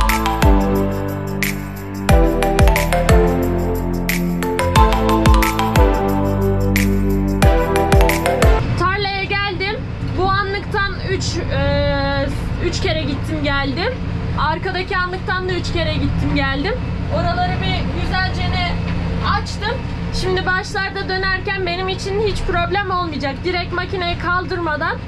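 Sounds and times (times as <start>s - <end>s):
woman talking: 8.8s - 25.0s.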